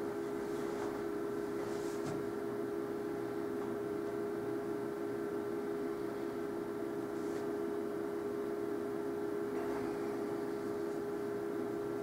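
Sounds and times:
mid-pitched electrical hum: 0.0 - 12.0.

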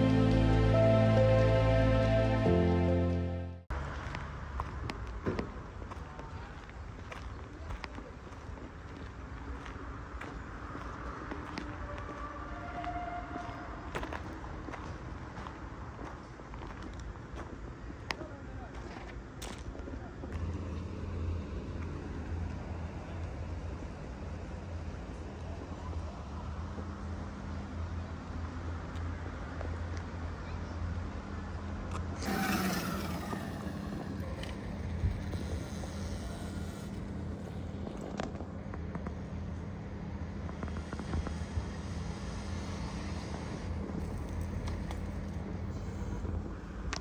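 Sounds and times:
background music: 0.0 - 3.7
distant traffic hum: 3.7 - 47.0.

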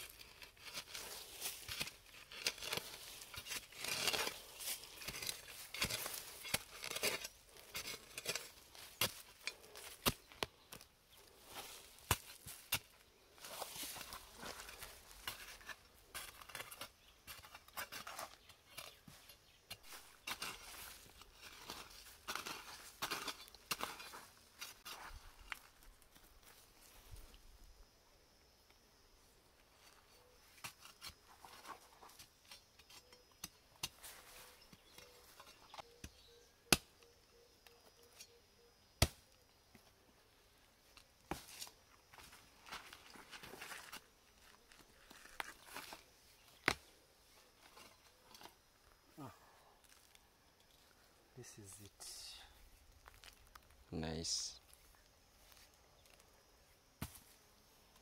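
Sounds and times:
hoe chopping and scraping soil: 0.0 - 25.6, 29.8 - 37.0, 39.0 - 39.2, 40.9 - 46.9, 47.5 - 48.6, 57.0 - 58.0.

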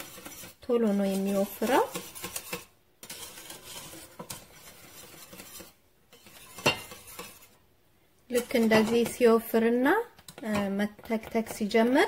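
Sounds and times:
whisk scraping metal pot: 0.0 - 7.7, 8.3 - 12.0.

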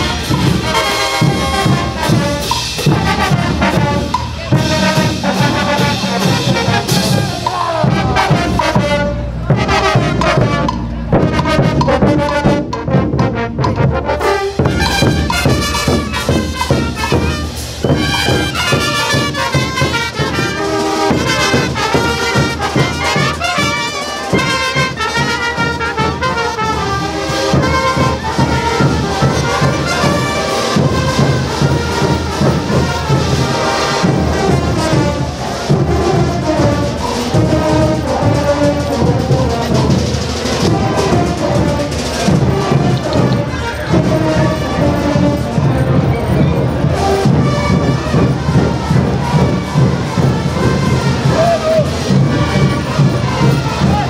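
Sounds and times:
marching brass band playing: 0.0 - 54.0.

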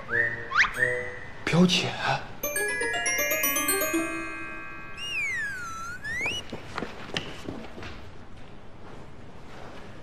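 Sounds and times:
comic slide whistle: 3.9 - 6.5.

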